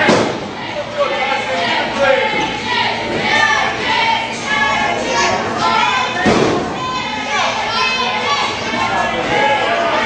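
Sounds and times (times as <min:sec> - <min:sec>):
crowd voices and shouts: 0:00.0 - 0:10.0.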